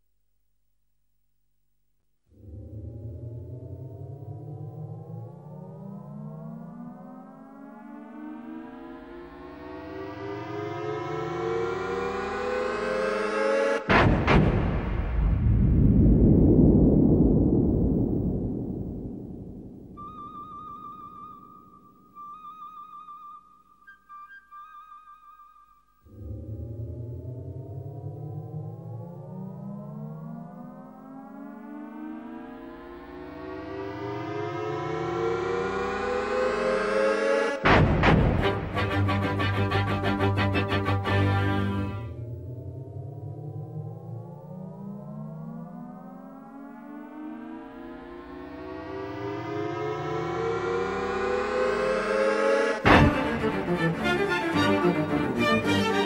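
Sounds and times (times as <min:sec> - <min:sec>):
rising synthesizer tones: 0:02.3 - 0:13.9, 0:26.1 - 0:37.7, 0:41.5 - 0:56.0.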